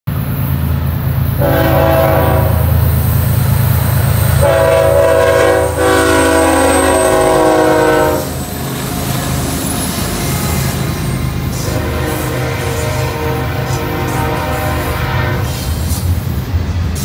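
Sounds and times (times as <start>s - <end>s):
diesel engines rumbling: 0.1s - 17.0s
locomotive air horn blasts: 1.4s - 3.0s, 4.4s - 8.6s, 11.5s - 15.6s.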